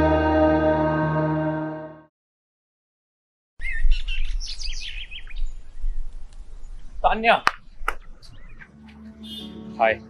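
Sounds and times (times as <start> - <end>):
small birds chirping: 3.6 - 10.0.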